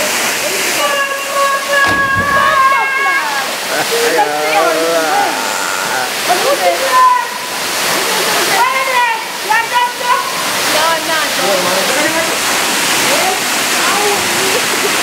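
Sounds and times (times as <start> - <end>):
waterfall rushing into pool: 0.0 - 15.0
voices calling and shouting: 0.4 - 15.0.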